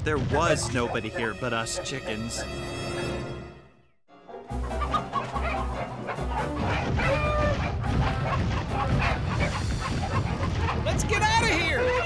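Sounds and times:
dramatic cartoon action music: 0.0 - 3.8, 4.4 - 12.0
chickens squawking: 0.4 - 3.1, 4.6 - 12.0.

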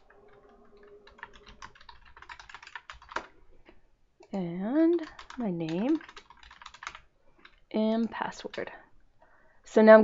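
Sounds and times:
typing on computer keyboard: 0.8 - 3.3, 4.9 - 8.7.

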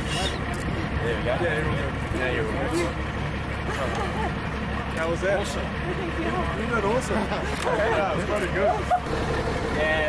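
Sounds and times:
people talking: 0.0 - 9.0, 9.8 - 10.0
low engine rumble: 0.0 - 10.0.

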